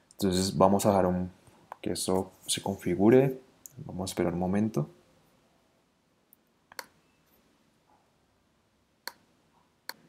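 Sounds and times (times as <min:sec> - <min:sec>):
computer mouse clicks: 0:06.3 - 0:07.0.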